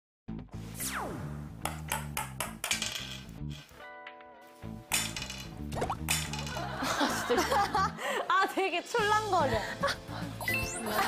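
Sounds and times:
background music with bass line: 0:00.3 - 0:07.9.

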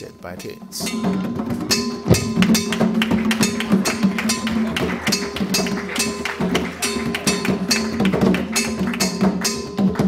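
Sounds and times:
hand drums played with bare hands: 0:00.0 - 0:10.0.

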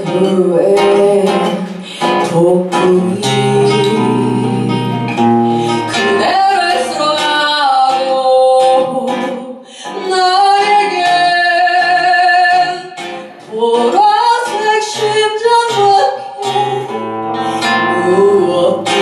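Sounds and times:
acoustic guitar: 0:00.0 - 0:19.0
woman singing: 0:00.0 - 0:19.0.

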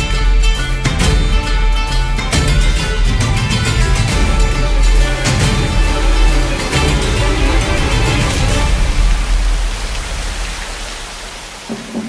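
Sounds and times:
music: 0:00.0 - 0:10.2
steady rushing noise: 0:02.7 - 0:12.0.

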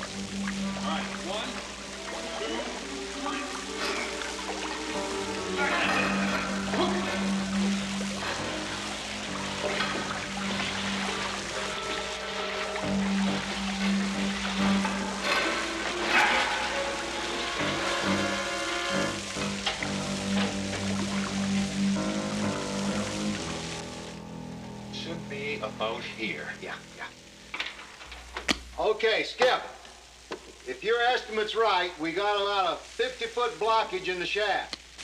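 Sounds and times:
water sloshing: 0:00.0 - 0:23.8
film score with low held notes: 0:00.0 - 0:27.5.

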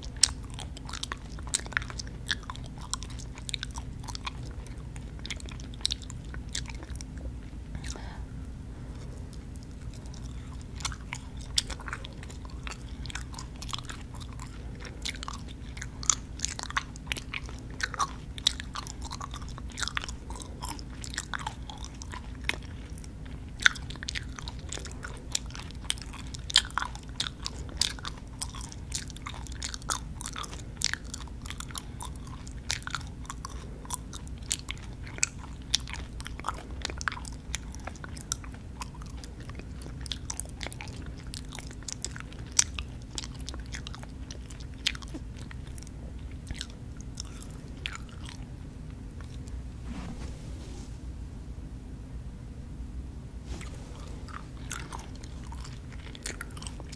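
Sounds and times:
wet chewing mouth sounds: 0:00.0 - 0:49.7, 0:53.5 - 0:56.9
steady low hum: 0:00.0 - 0:56.9.

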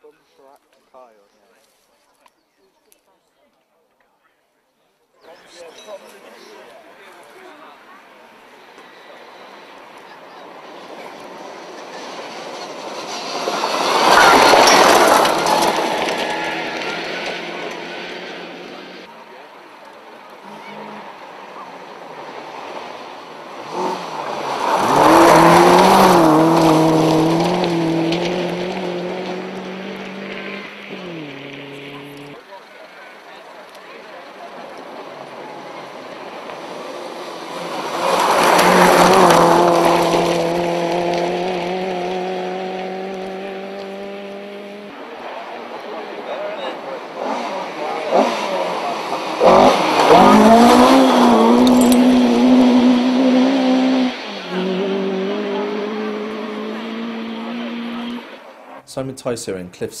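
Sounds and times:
rally cars passing at speed: 0:05.4 - 0:58.9
engine changing gear: 0:47.2 - 0:58.5.

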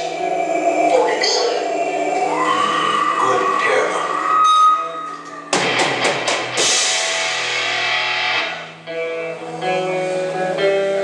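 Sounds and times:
grindcore band playing: 0:05.5 - 0:10.4.

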